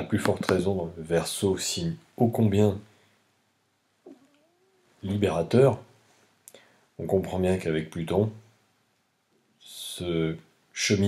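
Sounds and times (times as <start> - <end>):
faint wavering cry: 4.1 - 5.0.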